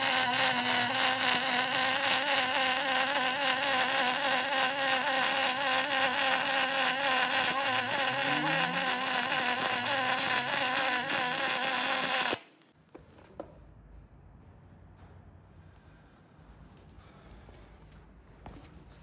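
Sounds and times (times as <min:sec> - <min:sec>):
welding arc buzzing hiss: 0:00.0 - 0:12.6.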